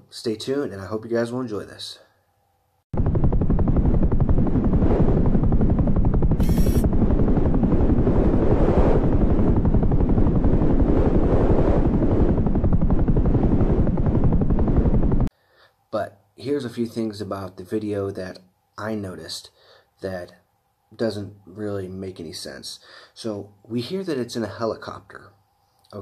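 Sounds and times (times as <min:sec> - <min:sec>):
helicopter rotor beating: 0:03.0 - 0:15.3
brief high hiss: 0:06.4 - 0:06.8.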